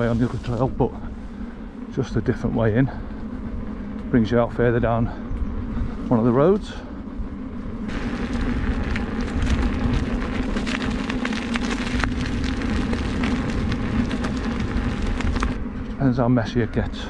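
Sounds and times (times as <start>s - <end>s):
crackle of loose stones: 0.0s - 1.0s, 6.0s - 17.0s
steady wheel hum: 0.0s - 17.0s
tyre rolling over wet grit: 7.8s - 16.1s.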